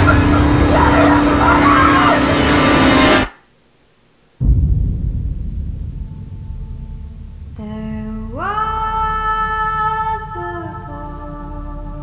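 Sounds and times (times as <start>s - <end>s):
dramatic trailer music: 4.4s - 10.8s
low drone: 4.4s - 12.0s.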